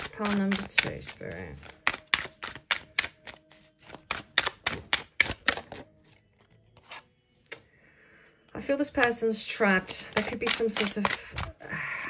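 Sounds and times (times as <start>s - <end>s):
cards being shuffled: 0.0s - 7.1s, 10.0s - 11.6s.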